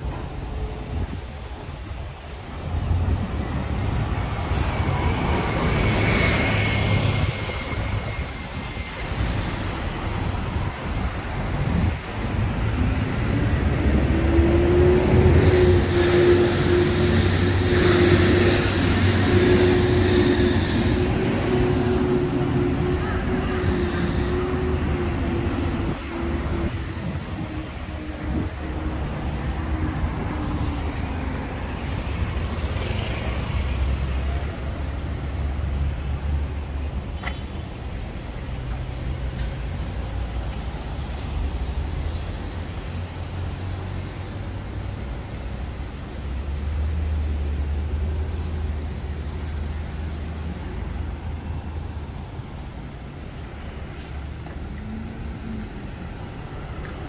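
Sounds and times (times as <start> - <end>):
cars and buses passing: 0.0 - 57.0.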